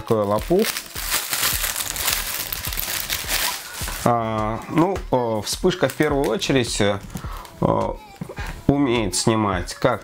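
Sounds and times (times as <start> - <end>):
plastic bag crinkling: 0.0 - 4.8.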